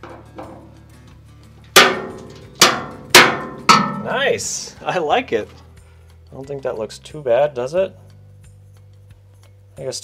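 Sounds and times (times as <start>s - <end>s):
knocks on steel enclosure door: 1.8s - 4.2s.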